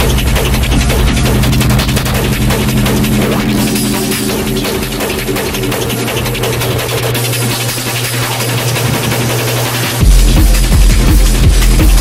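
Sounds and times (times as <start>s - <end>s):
high techno percussion: 0.0s - 12.0s
low bass drone: 0.0s - 12.0s.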